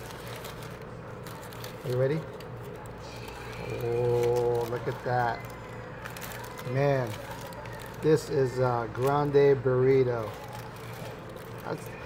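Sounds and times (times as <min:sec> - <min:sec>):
paper and foil wrapping crinkling: 0:00.0 - 0:12.0.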